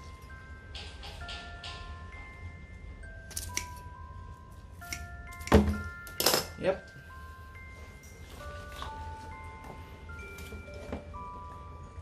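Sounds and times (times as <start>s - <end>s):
chiming mallet music: 0.0s - 12.0s.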